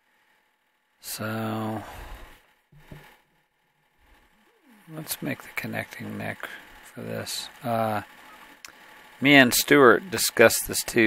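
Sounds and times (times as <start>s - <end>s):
man speaking: 4.7s - 8.1s, 9.2s - 11.0s.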